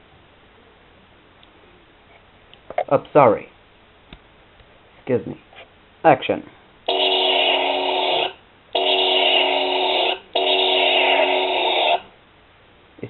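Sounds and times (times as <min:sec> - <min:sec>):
toy blaster electronic firing sound: 0:06.9 - 0:12.0.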